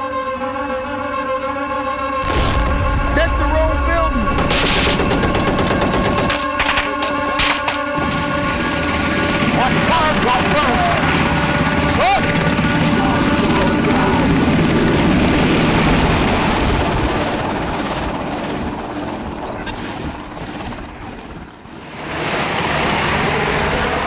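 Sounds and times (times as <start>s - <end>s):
helicopter rotor and engine: 0.0s - 24.0s.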